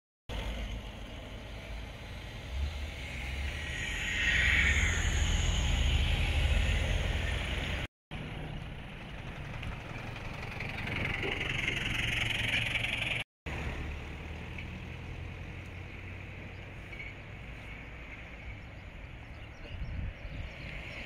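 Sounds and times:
cars driving past: 0.3s - 21.0s.

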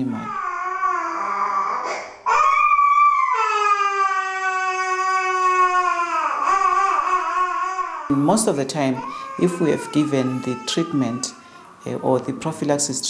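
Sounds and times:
small child crying: 0.0s - 8.2s, 8.8s - 11.8s.

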